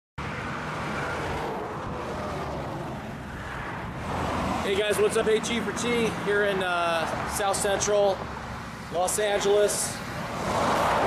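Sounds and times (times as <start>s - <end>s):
freeway traffic noise: 0.2s - 11.0s.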